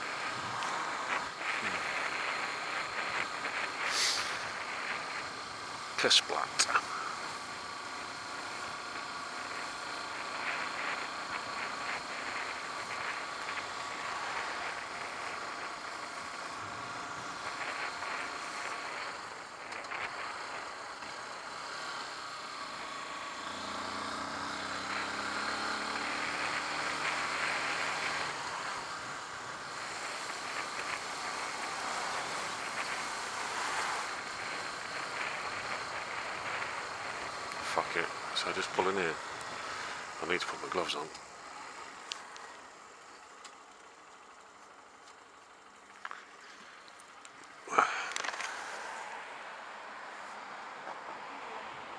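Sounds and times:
rushing air noise: 0.0s - 5.2s
motorcycle engine running: 0.0s - 49.3s.

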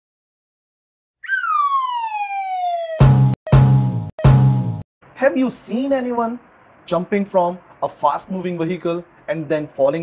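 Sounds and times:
falling whistle-like tone: 1.2s - 3.6s.

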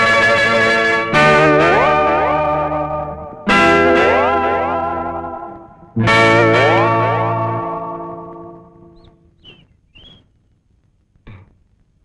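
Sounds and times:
dramatic guitar-like chord: 0.0s - 9.1s.

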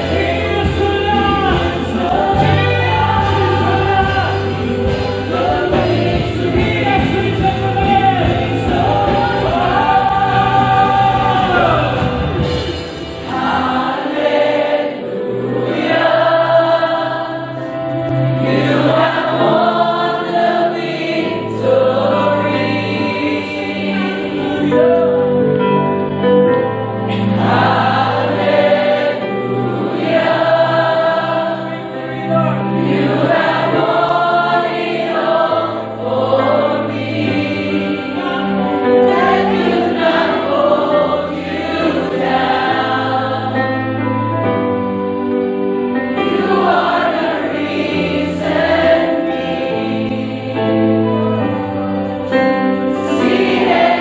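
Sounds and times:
band with acoustic guitar: 0.0s - 13.5s
voices singing worship song: 0.0s - 25.7s, 27.0s - 54.0s.

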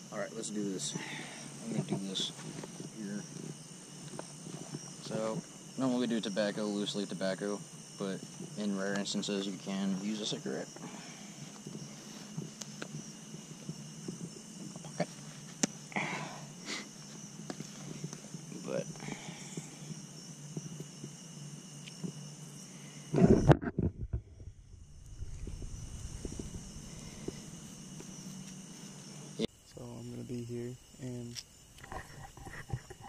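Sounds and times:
night insects chirping: 0.0s - 33.0s
rustling and light clicks: 11.4s - 15.8s
low rumbling thump: 23.2s - 27.6s.

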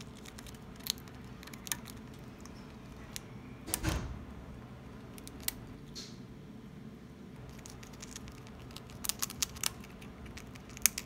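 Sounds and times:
hamster crunching on a chip: 0.0s - 3.3s, 5.0s - 5.8s, 7.3s - 11.0s.

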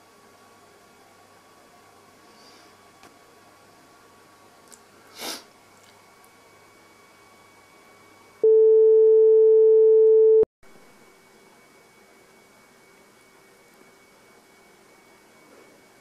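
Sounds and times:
electronic sine-wave beep: 8.4s - 10.5s
low steady hum: 8.4s - 11.6s.

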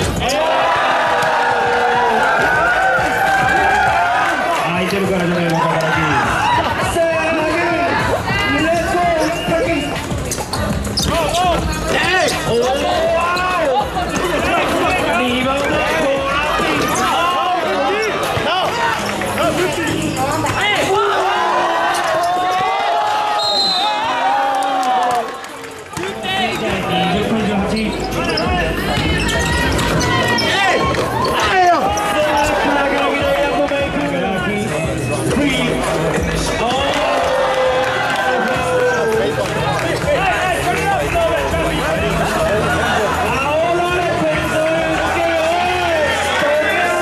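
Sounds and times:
music: 0.0s - 23.9s, 25.7s - 47.0s.

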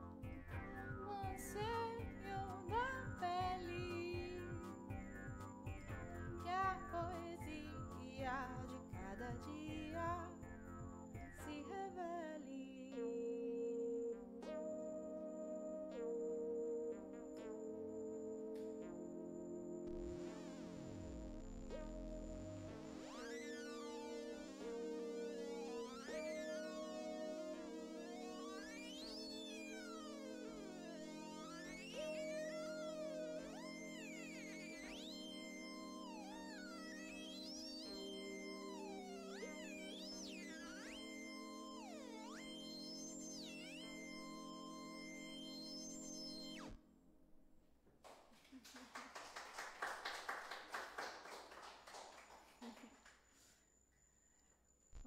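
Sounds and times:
synthesizer chord over low drone: 0.0s - 47.2s.

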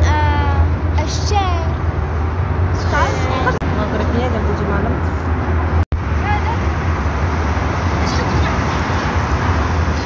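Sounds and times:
child's voice: 0.0s - 1.8s
street traffic rumble: 0.0s - 10.0s.

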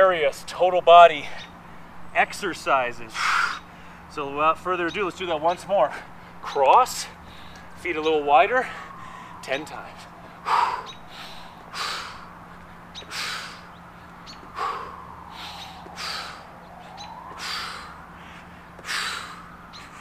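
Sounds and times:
man breathing hard: 3.0s - 4.2s, 5.9s - 7.8s, 8.5s - 20.0s
sharp huffing exhale: 14.5s - 16.5s.

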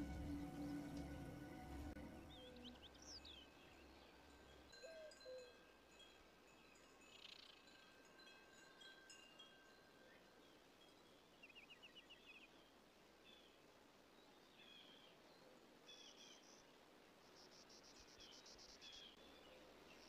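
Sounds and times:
faint high chime-like tones: 0.0s - 12.0s.

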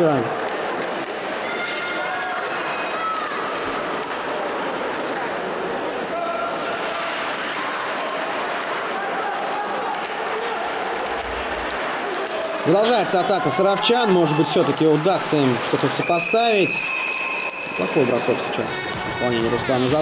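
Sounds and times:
skates hissing on ice: 6.5s - 8.6s.

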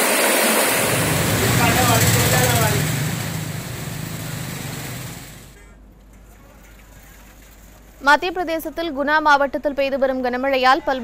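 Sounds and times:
car engine: 0.0s - 5.6s.

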